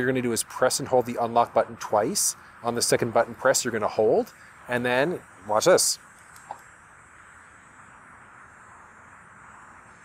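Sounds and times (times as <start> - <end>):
faint outdoor background hiss: 0.0 - 10.0.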